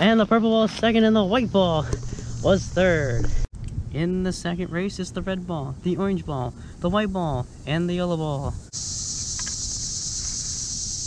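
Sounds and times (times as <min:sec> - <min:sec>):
high-pitched insect chorus: 0:01.3 - 0:03.4, 0:05.8 - 0:11.0.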